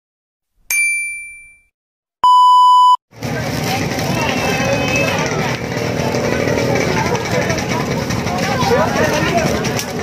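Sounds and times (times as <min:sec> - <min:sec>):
bright bell ding: 0:00.7 - 0:01.7
electronic beep: 0:00.8 - 0:03.0
market crowd bustle: 0:03.1 - 0:10.0.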